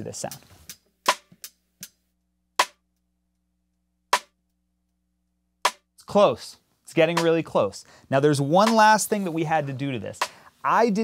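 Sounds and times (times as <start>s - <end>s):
snare drum rim clicks: 8.6s - 9.0s.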